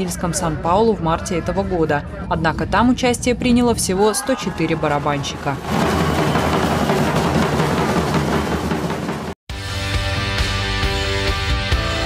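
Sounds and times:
massed drum roll: 5.2 - 9.4.

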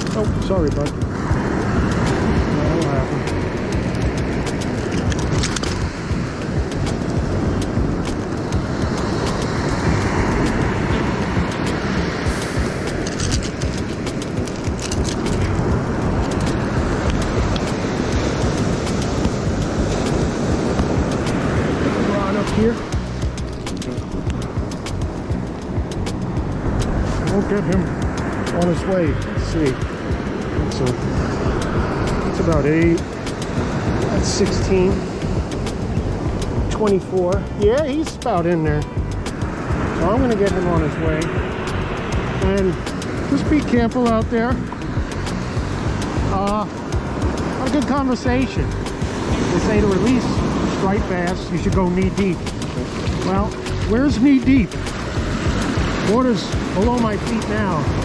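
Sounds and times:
surf and wind roaring: 0.0 - 58.0.

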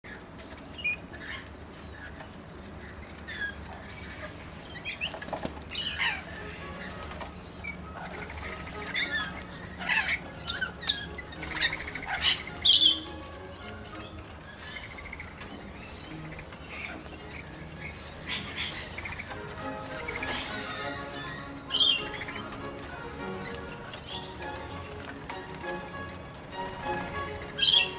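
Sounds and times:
parrots calling: 0.1 - 27.9
wings flapping: 4.8 - 27.9.

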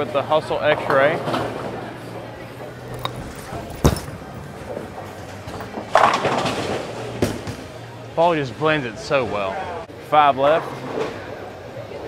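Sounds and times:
bowling ball rolling: 2.5 - 7.8
bowling pins clattering: 2.6 - 7.8.

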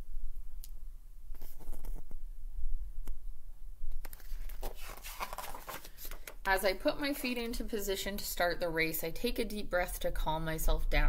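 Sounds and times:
book pages turning: 1.3 - 2.1, 4.0 - 6.5.

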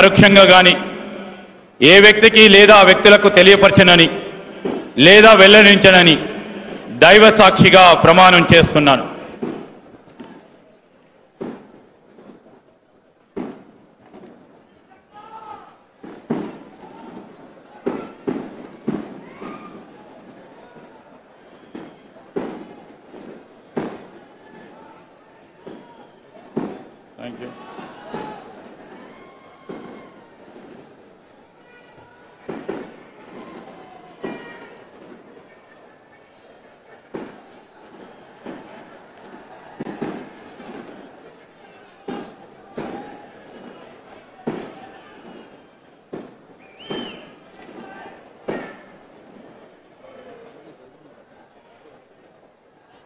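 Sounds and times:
firecrackers banging: 0.0 - 51.0
rising and falling whistle: 46.6 - 47.4.

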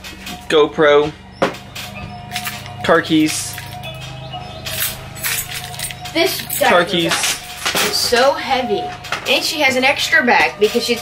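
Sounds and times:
faint background music: 0.0 - 11.0
car keys jangling: 1.7 - 8.2.

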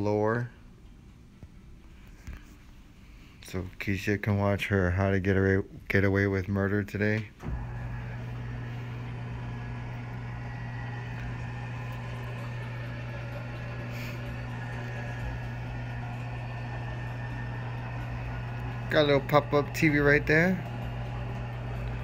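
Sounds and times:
electric lift motor humming: 7.4 - 22.0.

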